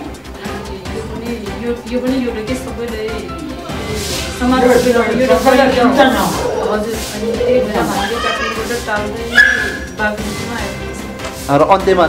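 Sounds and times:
woman talking: 0.4s - 11.1s.

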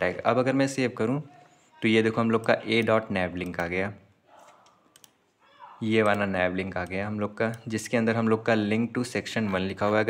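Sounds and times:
man speaking: 0.0s - 4.6s, 5.4s - 10.0s.

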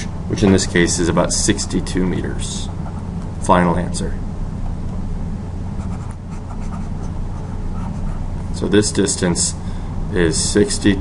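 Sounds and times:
steady low hum: 0.0s - 11.0s
stylus scratching on tablet: 2.6s - 3.1s, 5.8s - 8.3s.

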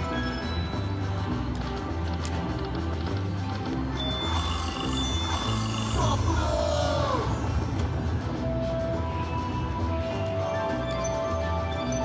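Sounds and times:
slot machine bonus music: 0.0s - 12.0s.

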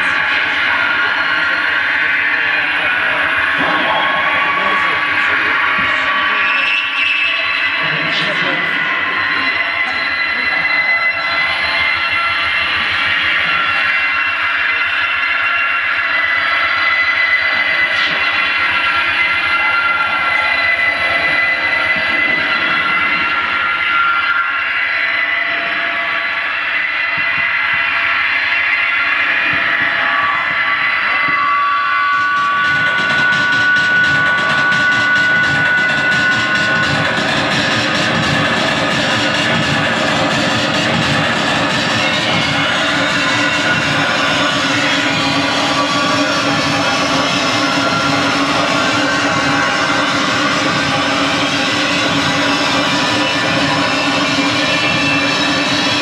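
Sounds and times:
harsh noise music: 0.0s - 56.0s
steady high tones: 0.0s - 56.0s.

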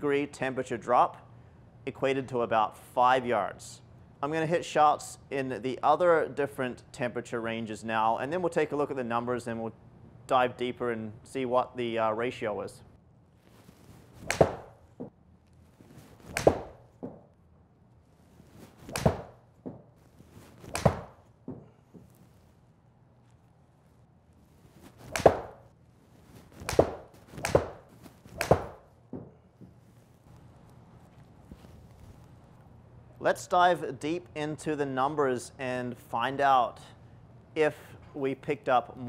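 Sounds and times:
golf club striking balls: 14.2s - 15.1s, 16.2s - 17.3s, 18.8s - 19.9s, 20.7s - 22.0s, 25.0s - 25.7s, 26.6s - 29.4s.

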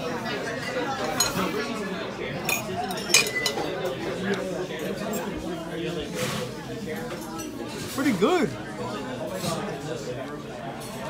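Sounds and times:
fork clinking against dishes: 2.4s - 5.4s.

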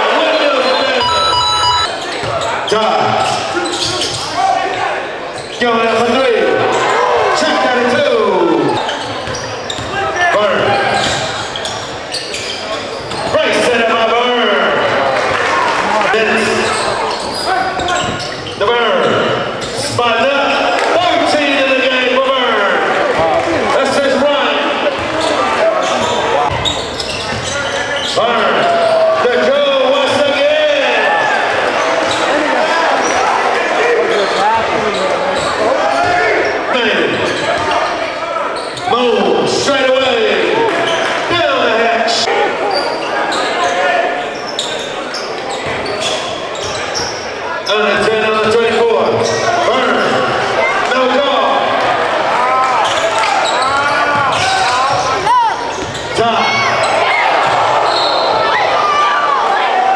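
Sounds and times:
shouting and chatter: 0.0s - 59.9s
basketball bouncing on court: 9.0s - 10.0s, 26.0s - 27.6s, 54.0s - 56.1s.

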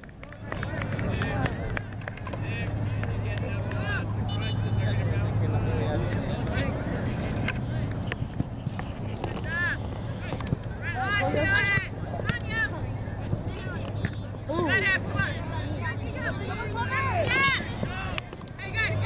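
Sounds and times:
distant shouts of players and spectators: 0.0s - 8.1s, 9.1s - 19.0s.

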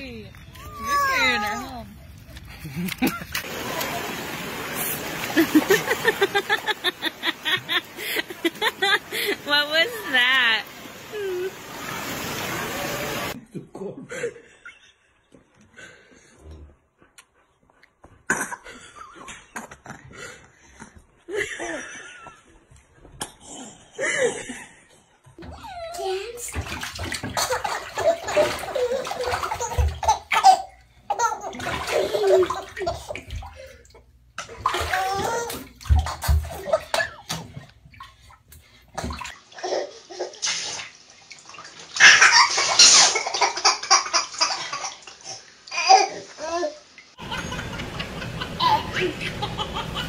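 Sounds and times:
water splashing in a bathtub: 2.8s - 13.4s, 25.4s - 47.3s
babies laughing and babbling: 25.4s - 33.7s, 34.6s - 37.6s.

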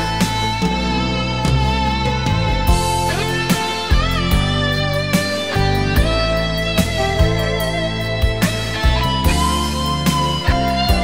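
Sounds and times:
band backing: 0.0s - 11.0s
lead guitar bending notes: 0.0s - 11.0s
drum hits: 2.7s - 6.2s.

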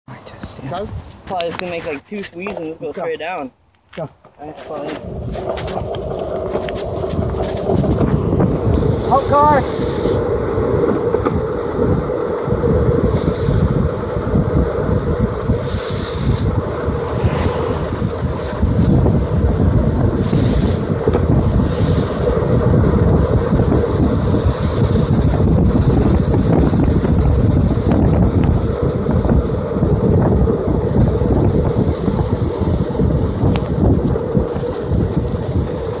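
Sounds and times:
wind buffeting microphone: 0.1s - 3.4s, 4.4s - 36.0s
longboard wheels rolling on asphalt: 0.2s - 36.0s.

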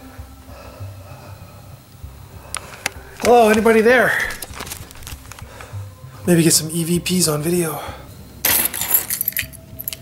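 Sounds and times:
keys jangling: 8.5s - 10.0s.

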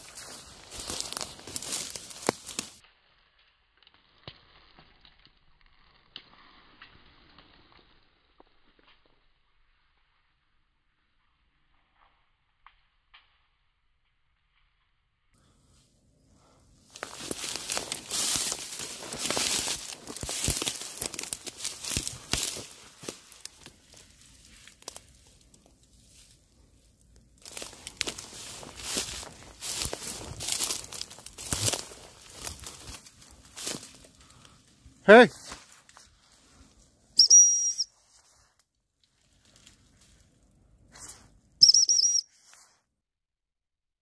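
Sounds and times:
dry reeds crackling and rustling: 0.0s - 9.1s, 16.4s - 37.0s, 37.7s - 41.4s.

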